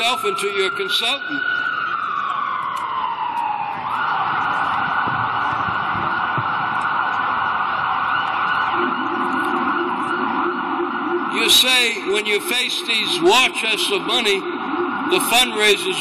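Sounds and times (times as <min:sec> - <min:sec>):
emergency vehicle siren: 0:00.0 - 0:16.0
low siren tone: 0:00.0 - 0:16.0.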